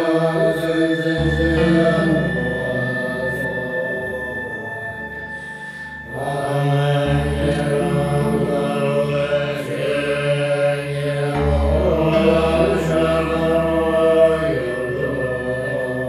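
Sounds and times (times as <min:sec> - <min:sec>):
low bass notes: 0:00.0 - 0:16.0
monks chanting: 0:00.0 - 0:16.0.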